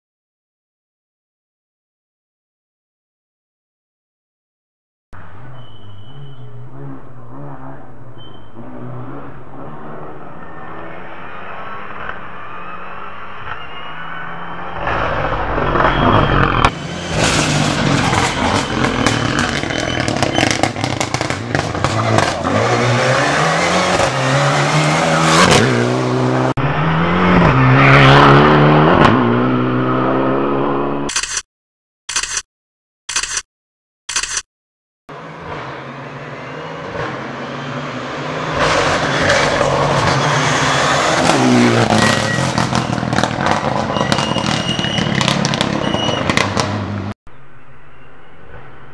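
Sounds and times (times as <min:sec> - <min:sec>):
rally car engine revving: 0:05.2 - 0:31.1, 0:35.1 - 0:47.2.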